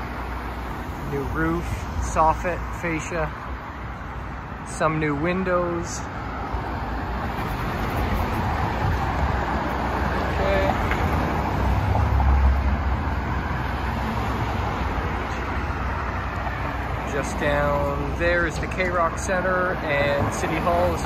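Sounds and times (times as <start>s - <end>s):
car passing by: 6.2s - 17.6s.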